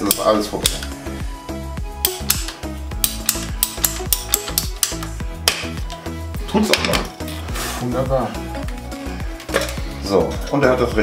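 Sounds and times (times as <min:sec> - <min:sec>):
ratcheting pipe cutter clicking: 0:00.0 - 0:01.0, 0:02.0 - 0:06.0
background music: 0:00.0 - 0:11.0.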